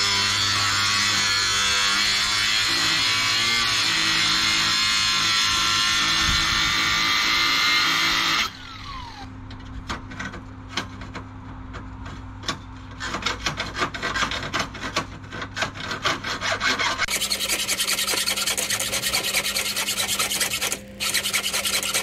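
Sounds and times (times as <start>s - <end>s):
hand file rasping on steel: 15.6s - 22.0s.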